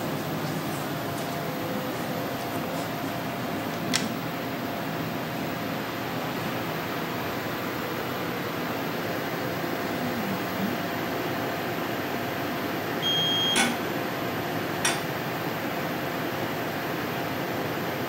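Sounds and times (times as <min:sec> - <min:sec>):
laser equipment and fans humming: 0:00.0 - 0:18.0
short electronic beep: 0:13.0 - 0:13.7.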